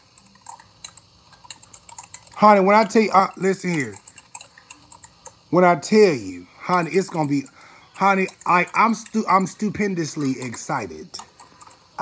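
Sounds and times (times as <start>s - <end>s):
light clicks and taps: 0.1s - 5.4s, 6.7s - 9.3s, 10.1s - 11.8s.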